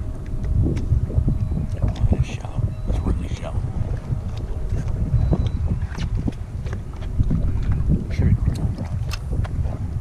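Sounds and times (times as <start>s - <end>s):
water splashing: 0.0s - 10.0s
wind buffeting microphone: 0.0s - 10.0s.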